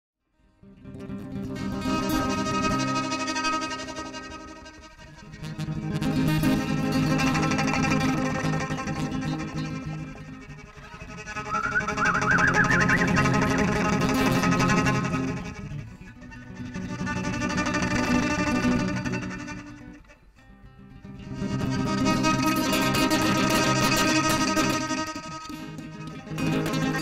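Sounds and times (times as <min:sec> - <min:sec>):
acoustic guitar: 0:00.4 - 0:27.0
violin: 0:01.6 - 0:27.0.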